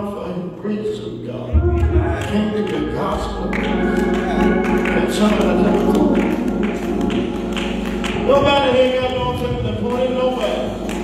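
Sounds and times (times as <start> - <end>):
church music with held chords: 1.2 - 11.0.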